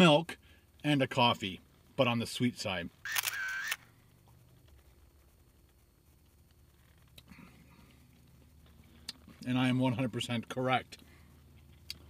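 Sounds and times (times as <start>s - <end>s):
camera shutter sound effect: 3.1s - 3.8s.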